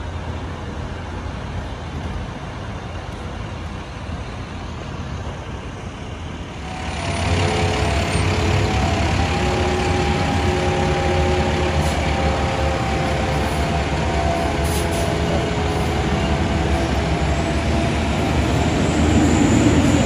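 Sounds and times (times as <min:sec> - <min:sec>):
diesel truck engines rumbling: 0:00.0 - 0:20.0.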